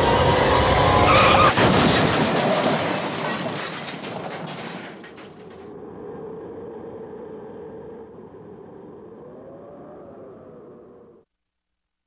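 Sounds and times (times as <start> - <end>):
faint wavering hum: 5.6 - 11.3.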